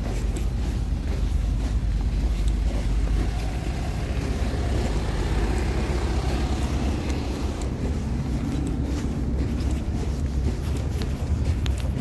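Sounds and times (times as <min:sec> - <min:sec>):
idling traffic rumble: 0:00.0 - 0:12.0.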